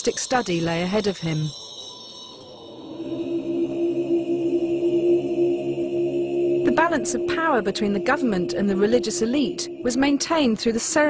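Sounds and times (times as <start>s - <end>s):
monks chanting low note: 2.6s - 11.0s.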